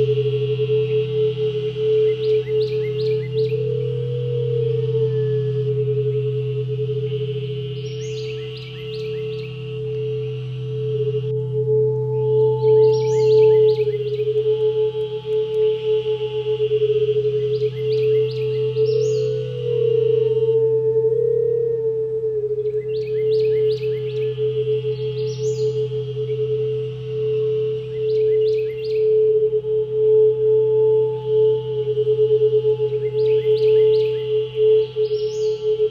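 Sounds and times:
singing bowl ringing: 0.0s - 20.8s
lower steady tone: 0.0s - 35.9s
high chirping calls: 12.6s - 15.6s, 17.2s - 20.4s, 22.6s - 29.1s, 32.8s - 35.9s.

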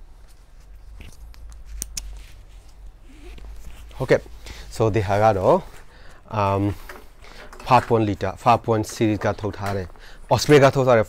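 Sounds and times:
backpack rustling: 0.1s - 7.4s.

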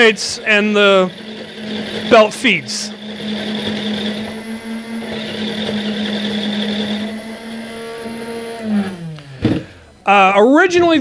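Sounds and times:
electric motors humming: 0.0s - 10.6s.

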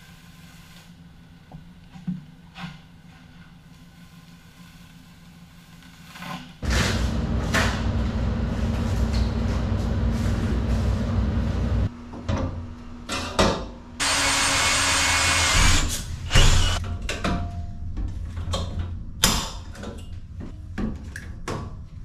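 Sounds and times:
power tool running on metal: 6.6s - 11.9s, 14.0s - 16.8s.

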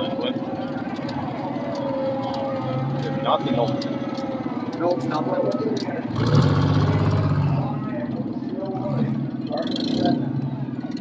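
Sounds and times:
car engine pulsing: 0.0s - 11.0s.

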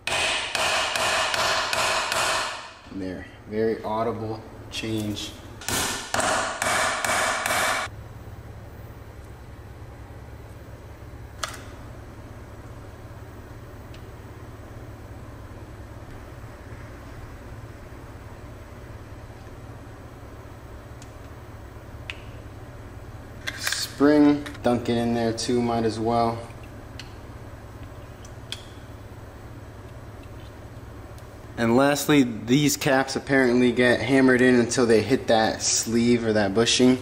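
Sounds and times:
hammer tapping metal: 0.0s - 2.7s, 5.6s - 7.9s
low steady hum: 0.0s - 37.0s.

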